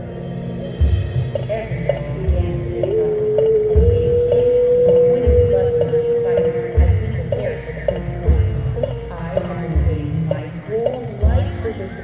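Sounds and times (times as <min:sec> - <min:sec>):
marching band music: 0:00.0 - 0:12.0
slow low beat: 0:00.7 - 0:12.0.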